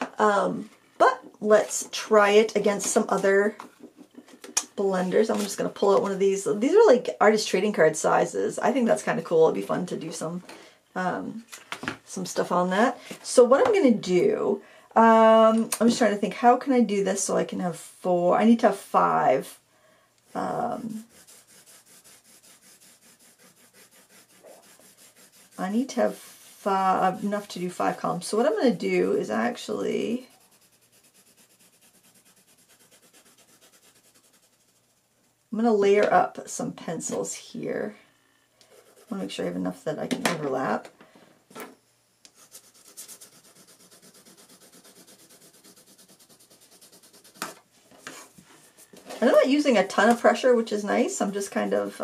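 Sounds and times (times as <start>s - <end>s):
loud brushing sound: 20.3s - 28.0s, 42.4s - 49.5s
pencil scribbling on paper: 20.3s - 29.2s, 29.9s - 35.0s, 38.7s - 39.3s, 42.4s - 48.9s, 50.1s - 52.0s.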